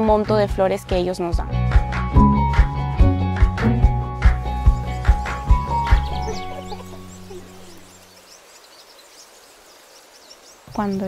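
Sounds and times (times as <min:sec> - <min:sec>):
background music chord: 0:01.6 - 0:07.8
small birds chirping: 0:04.1 - 0:11.0.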